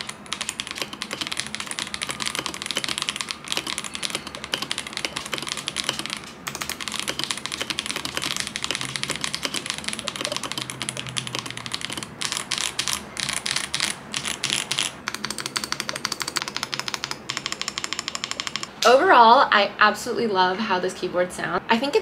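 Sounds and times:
mechanical keyboard typing: 0:00.0 - 0:18.7.

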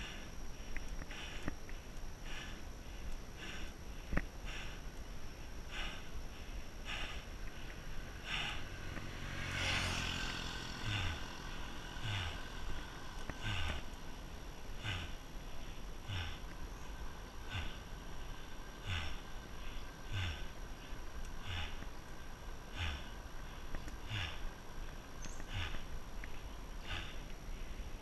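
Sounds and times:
cyclist heavy breathing: 0:00.0 - 0:28.0
steady low rumble: 0:00.0 - 0:28.0
scooter engine passing: 0:07.8 - 0:15.4.

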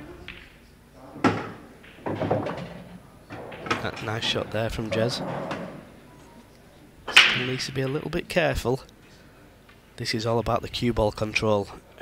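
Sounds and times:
billiard balls rolling and knocking: 0:00.0 - 0:06.5, 0:07.1 - 0:08.4
cue striking ball click: 0:01.2 - 0:06.0.

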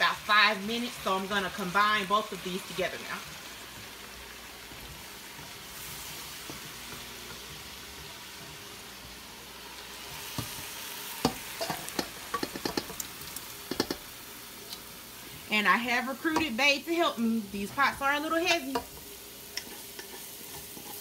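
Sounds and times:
gravy sizzling in a pot: 0:00.0 - 0:21.0
wooden spoon knocking pot: 0:11.2 - 0:13.0, 0:13.7 - 0:14.0, 0:16.3 - 0:16.6
metal pot clicks and knocks: 0:11.2 - 0:13.1, 0:13.7 - 0:14.0.

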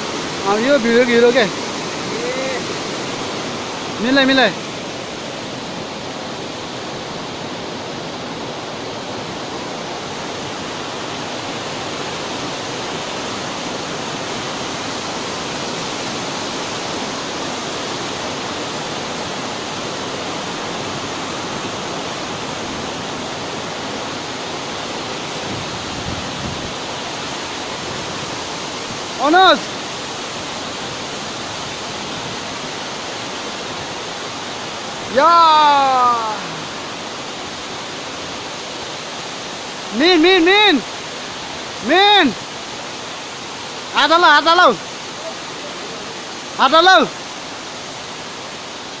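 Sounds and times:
water rushing through gates: 0:00.0 - 0:49.0.

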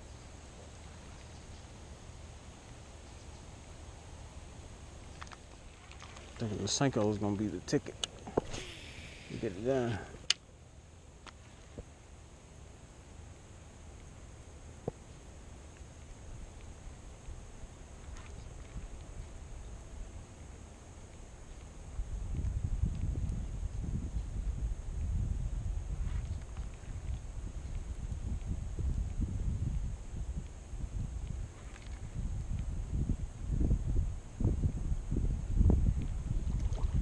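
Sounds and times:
wind buffeting microphone: 0:21.9 - 0:37.0.

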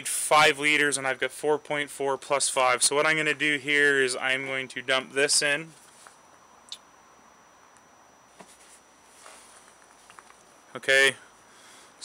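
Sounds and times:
soft rustle: 0:05.7 - 0:06.3, 0:08.3 - 0:10.6.

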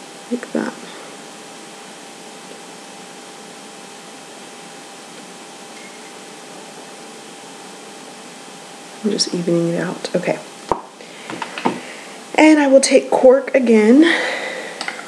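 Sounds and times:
background hiss: 0:00.0 - 0:15.0
faint hum tone: 0:00.0 - 0:15.0.

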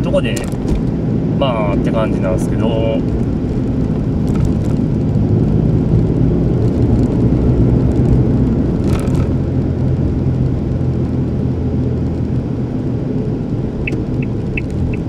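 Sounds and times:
car engine and tyre rumble: 0:00.0 - 0:15.0.

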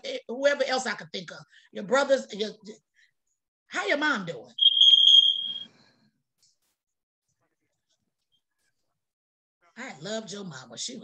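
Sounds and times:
high-pitched electronic beep: 0:04.6 - 0:05.6.

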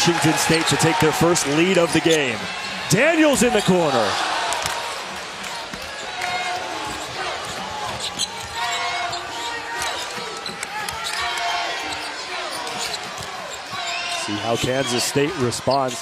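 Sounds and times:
arena crowd noise: 0:00.0 - 0:16.0
short high squeaks: 0:06.9 - 0:14.9.

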